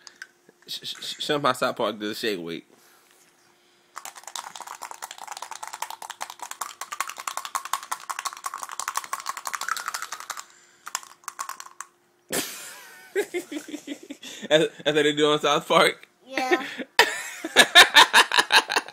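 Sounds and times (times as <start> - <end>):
clicking rattle of shaken object: 4.0 - 12.0.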